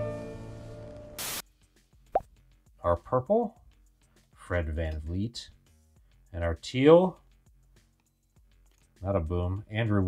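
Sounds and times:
burst of static: 1.2s - 1.4s.

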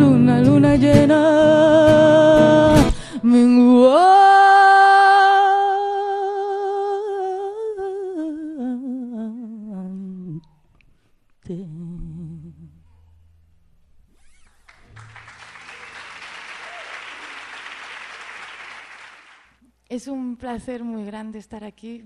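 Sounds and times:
audience applause: 14.7s - 19.5s.

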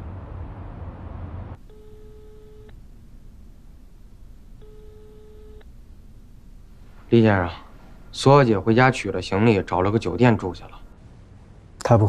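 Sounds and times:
low rumbling noise: 0.0s - 4.6s.

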